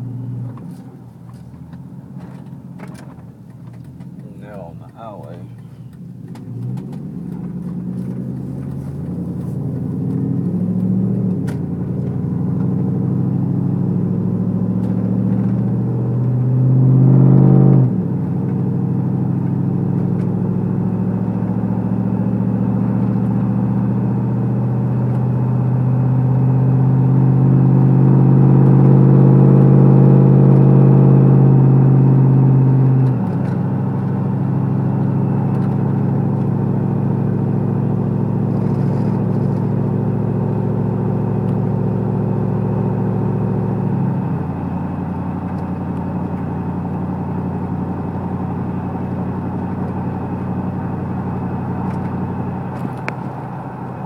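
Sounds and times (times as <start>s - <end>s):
road noise: 0.0s - 54.0s
truck engine: 0.0s - 54.0s.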